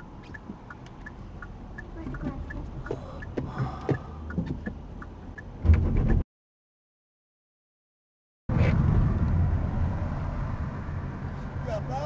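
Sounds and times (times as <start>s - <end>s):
car engine rumble: 0.0s - 6.2s, 8.5s - 12.0s
road noise: 0.0s - 6.2s, 8.5s - 12.0s.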